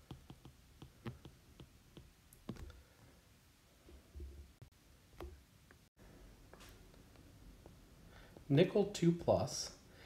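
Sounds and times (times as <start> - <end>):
stylus tapping on tablet: 0.0 - 2.7.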